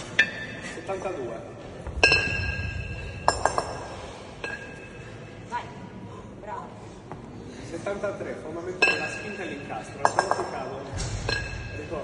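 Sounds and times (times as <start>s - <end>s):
kettlebells clinking together: 2.0s - 5.1s, 8.8s - 12.0s.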